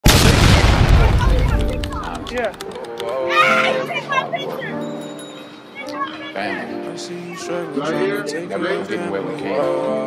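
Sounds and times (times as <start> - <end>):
music: 0.8 - 10.0.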